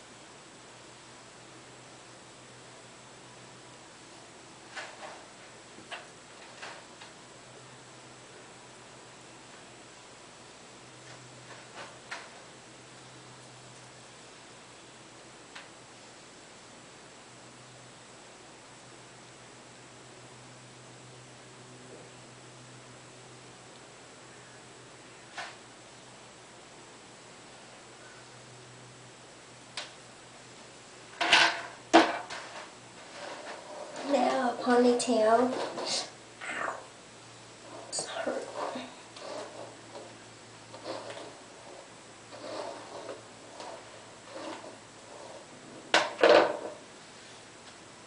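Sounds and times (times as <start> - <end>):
steady low hum: 0.0 - 48.0
hairbrush brushing hair: 37.6 - 45.6.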